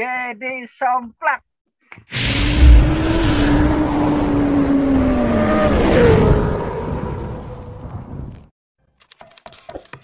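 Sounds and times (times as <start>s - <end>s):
motorcycle engine with sliding pitch: 2.2s - 8.3s.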